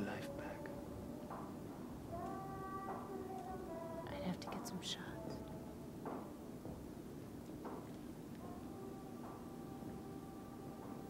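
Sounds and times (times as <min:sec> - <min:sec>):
faint sustained music tones: 0:00.0 - 0:11.0.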